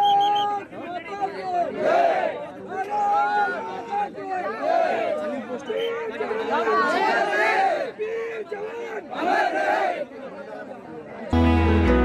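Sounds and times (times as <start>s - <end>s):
chatter: 0.0s - 11.4s
crowd chanting in unison: 1.6s - 2.4s, 4.4s - 5.5s, 6.1s - 10.2s.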